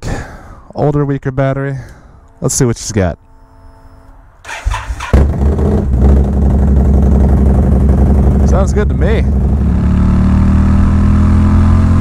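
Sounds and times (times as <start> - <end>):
motorcycle engine idling: 4.5 - 9.7.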